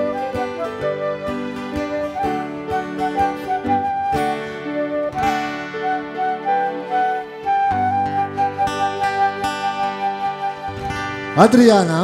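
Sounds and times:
strummed acoustic guitar: 0:00.0 - 0:11.6
flute melody: 0:00.0 - 0:11.9.

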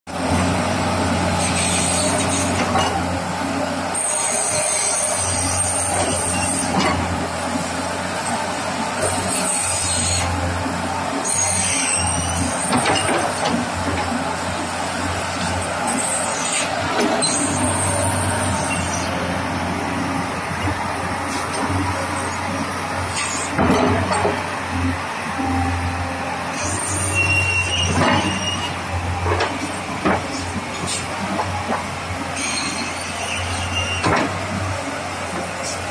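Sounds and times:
engine humming: 0:00.1 - 0:32.7
outdoor background noise: 0:00.1 - 0:35.9.

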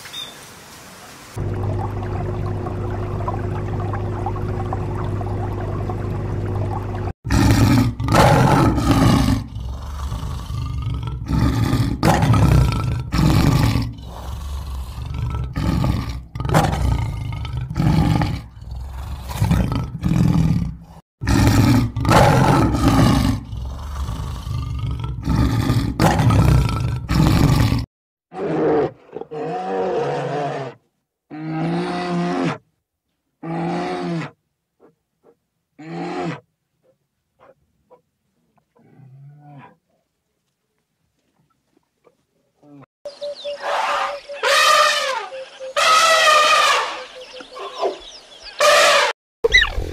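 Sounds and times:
lion roaring: 0:07.3 - 0:32.6.

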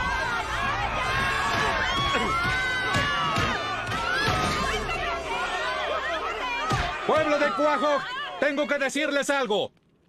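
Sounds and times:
crowd shouting and yelling: 0:00.0 - 0:09.3.

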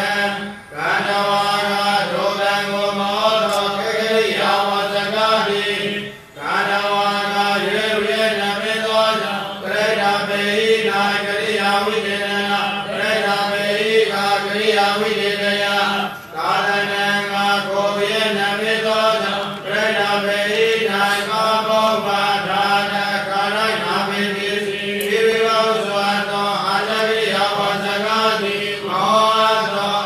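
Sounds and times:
man chanting scripture: 0:00.0 - 0:30.0.

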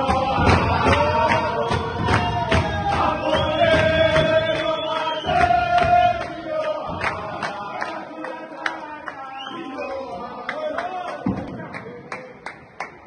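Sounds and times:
group singing a chant: 0:00.0 - 0:11.7
hand claps: 0:00.0 - 0:13.0.

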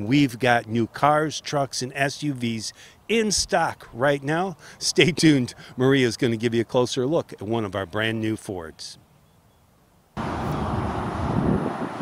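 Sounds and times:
rumbling hiss outdoors: 0:00.0 - 0:12.0.

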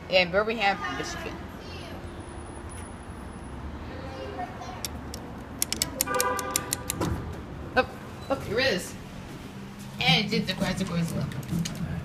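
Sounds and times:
sharp clicks: 0:04.8 - 0:07.1.

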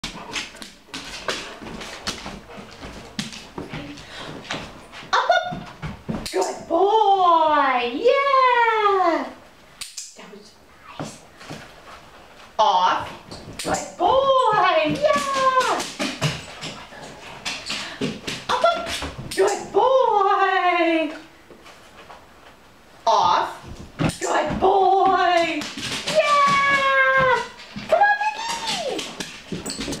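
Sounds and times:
woman speaking in sing-song tones: 0:13.7 - 0:15.8, 0:18.5 - 0:21.3, 0:24.2 - 0:29.0.

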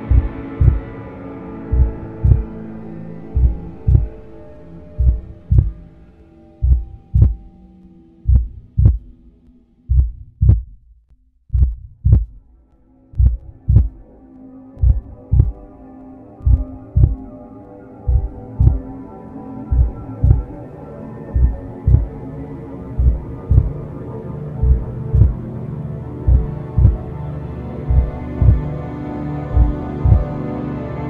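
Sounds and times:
slow heartbeat thumps: 0:00.0 - 0:01.0, 0:01.7 - 0:02.6, 0:03.2 - 0:04.3, 0:05.0 - 0:05.9, 0:06.6 - 0:07.6, 0:08.2 - 0:09.2, 0:09.9 - 0:10.9, 0:11.5 - 0:12.4, 0:13.2 - 0:14.0, 0:14.8 - 0:15.7, 0:16.4 - 0:17.3, 0:18.0 - 0:18.9, 0:19.7 - 0:20.5, 0:21.3 - 0:22.2, 0:23.0 - 0:23.8, 0:24.6 - 0:25.4, 0:26.3 - 0:27.1, 0:27.8 - 0:28.7, 0:29.5 - 0:30.3
sustained low drone: 0:00.0 - 0:10.8, 0:12.0 - 0:31.0.

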